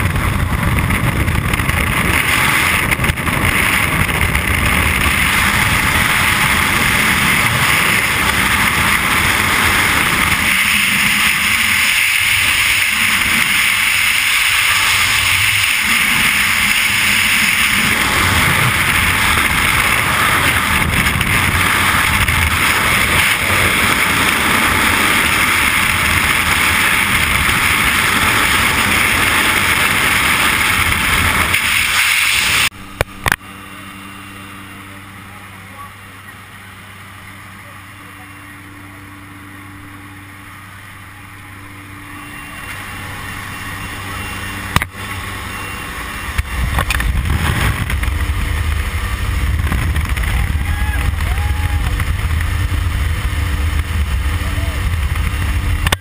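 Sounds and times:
wind rushing over microphone: 0.0 - 33.4, 41.6 - 56.0
steady low hum: 0.0 - 56.0.

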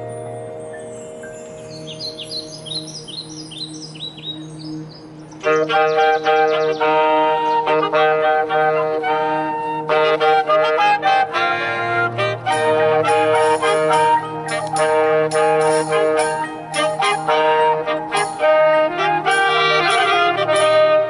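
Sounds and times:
high bird-like chirps: 0.6 - 7.6
marching band brass and woodwinds: 5.4 - 21.0
percussion hits: 12.0 - 21.0.

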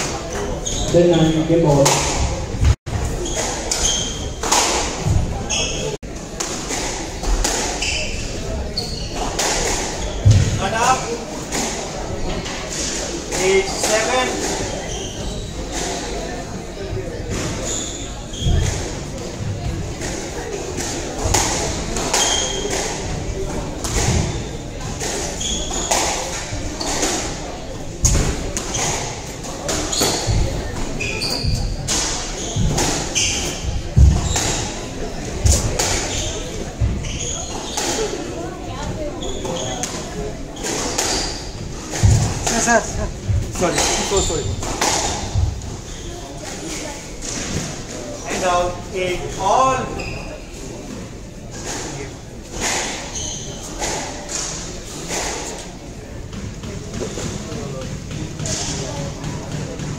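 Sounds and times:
squash ball hitting rackets and walls: 0.0 - 16.4, 18.4 - 38.3, 38.9 - 48.4, 56.2 - 59.9
shoes squeaking on wooden floor: 0.1 - 6.0, 7.7 - 11.2, 13.3 - 16.2, 17.3 - 19.2, 21.2 - 50.8, 51.5 - 55.5.

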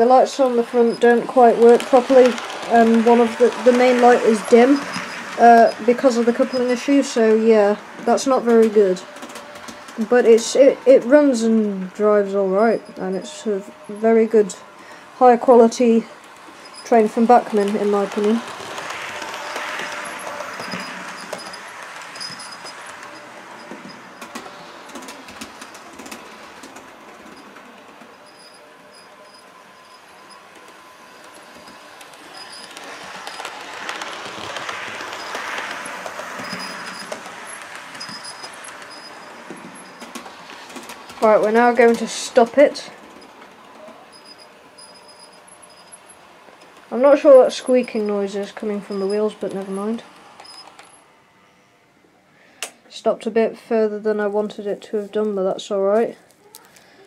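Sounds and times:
model train motor whirring: 0.0 - 51.1
track clicks: 0.0 - 51.2.

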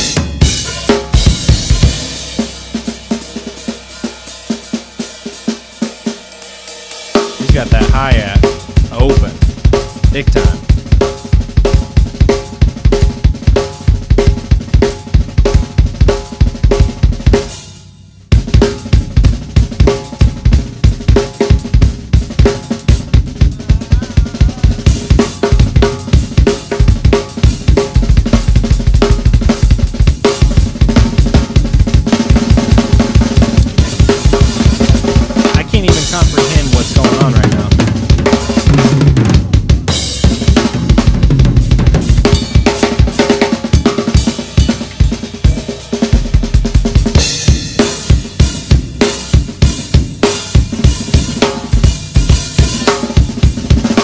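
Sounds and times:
cymbal crashes: 0.0 - 7.5
fast drum kit solo: 0.0 - 54.0.

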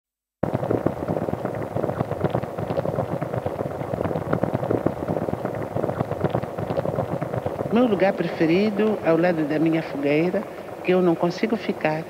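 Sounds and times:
wood fire crackling and popping: 0.4 - 12.0.

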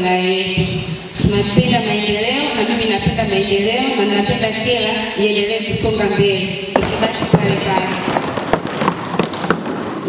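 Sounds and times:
person speaking: 0.0 - 8.1.

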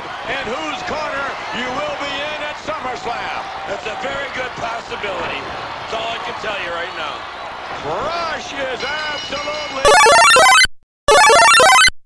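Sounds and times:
rapid stepping electronic beeps: 9.9 - 11.9.

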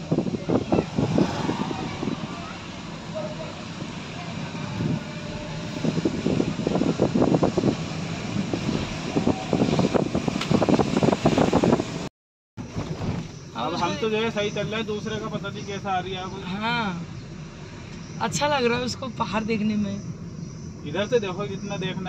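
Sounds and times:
car road and engine noise: 0.0 - 22.0
people talking indistinctly: 13.6 - 17.3, 20.8 - 22.0.

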